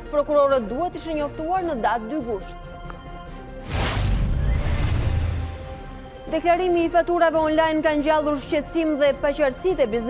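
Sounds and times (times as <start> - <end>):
whoosh with deep bass boom: 3.7 - 5.9.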